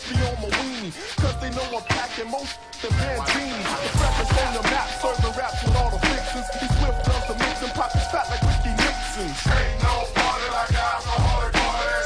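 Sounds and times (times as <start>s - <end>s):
drum beat with bass kicks: 0.0s - 12.0s
rapping: 0.0s - 12.0s
held synth note: 4.0s - 9.8s.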